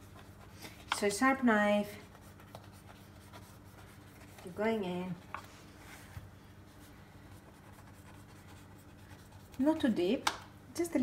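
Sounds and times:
knife scratching pastry: 0:00.0 - 0:05.4, 0:06.7 - 0:10.0
steady low hum: 0:00.0 - 0:11.0.

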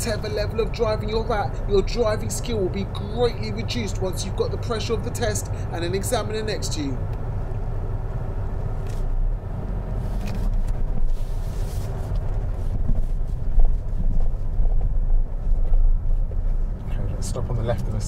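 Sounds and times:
person speaking: 0:00.0 - 0:07.0
car engine and road noise: 0:00.0 - 0:18.0.

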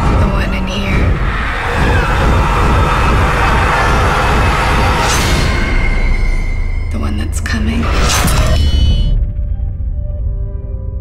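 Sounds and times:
deep low rumble: 0:00.0 - 0:11.0
horror film score: 0:00.0 - 0:11.0.

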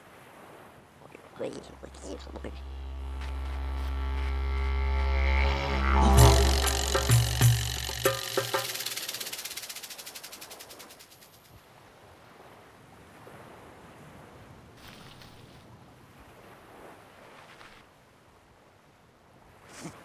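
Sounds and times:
low droning note: 0:01.4 - 0:10.4
rapid rattle: 0:04.7 - 0:11.6.

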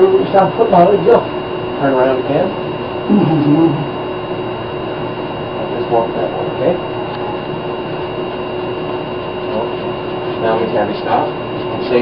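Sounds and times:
constant low hum: 0:00.0 - 0:12.0
faint high whine: 0:00.0 - 0:12.0.

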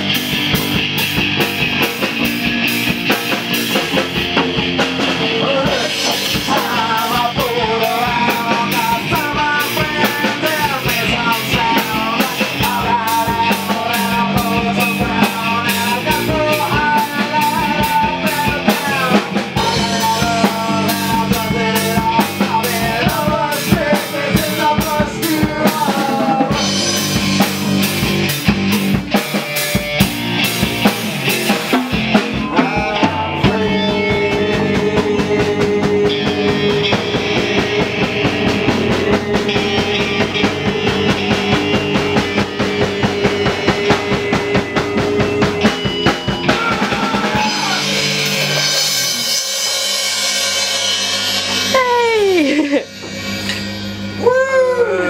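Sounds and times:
drum kit: 0:00.0 - 0:55.0
electric guitar: 0:00.0 - 0:55.0
person singing: 0:05.0 - 0:27.0, 0:30.9 - 0:49.4, 0:51.6 - 0:53.0, 0:54.2 - 0:55.0.

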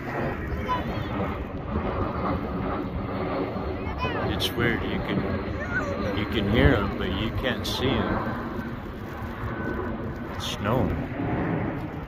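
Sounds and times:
jet aircraft low rumble: 0:00.0 - 0:12.0.

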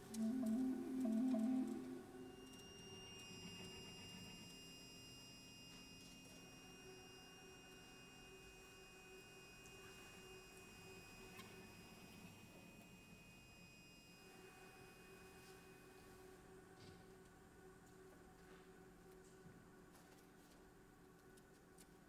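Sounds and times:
faint held high tones: 0:00.0 - 0:08.2.

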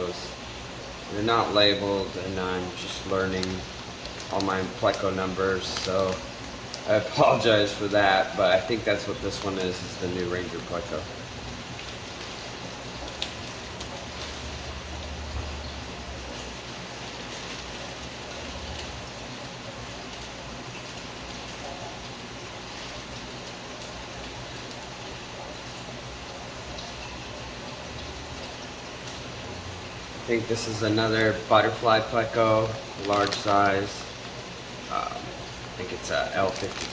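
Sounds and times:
aquarium water bubbling: 0:00.0 - 0:36.9
low hum of pumps: 0:00.0 - 0:36.9.

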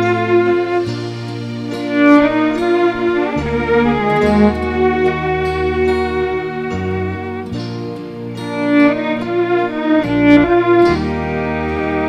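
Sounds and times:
electric violins in harmony: 0:00.0 - 0:12.0
low bass line: 0:00.0 - 0:12.0.

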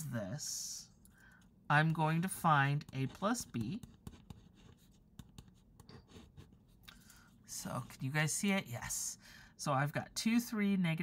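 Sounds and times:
pen writing on paper: 0:02.8 - 0:06.7.

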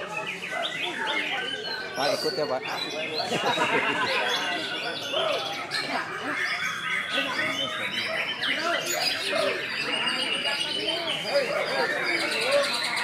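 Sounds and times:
other songbirds singing: 0:00.0 - 0:13.0
people talking: 0:00.0 - 0:13.0.

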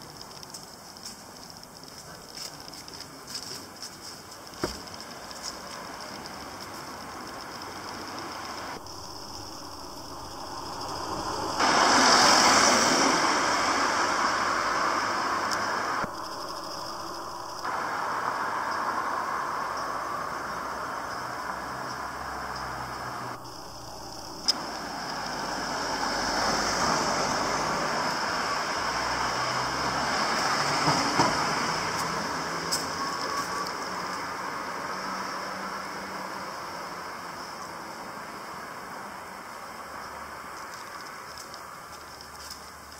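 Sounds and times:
sharp clicks: 0:00.0 - 0:09.8
street traffic: 0:00.0 - 0:42.9
vehicle passing close: 0:04.6 - 0:41.1.

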